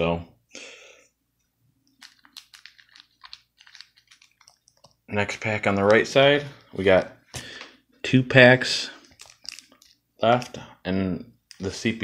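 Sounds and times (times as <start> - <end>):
foil card pack crinkling: 2.0 - 5.0, 9.0 - 10.5.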